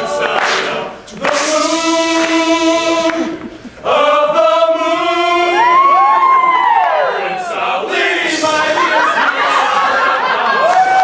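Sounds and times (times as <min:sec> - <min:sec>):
male a cappella group singing: 0:00.0 - 0:11.0.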